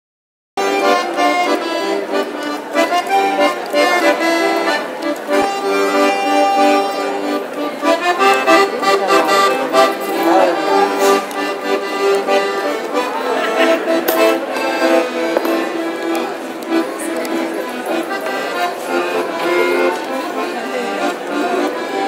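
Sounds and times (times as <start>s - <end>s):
solo accordion melody: 0.6s - 22.0s.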